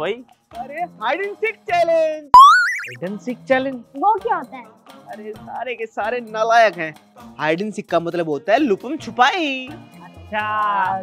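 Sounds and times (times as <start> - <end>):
cartoon boing twang: 2.4 - 3.0.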